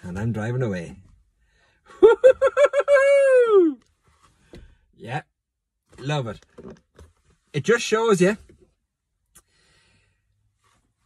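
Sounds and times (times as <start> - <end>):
man falsetto vocalizing: 2.1 - 3.8.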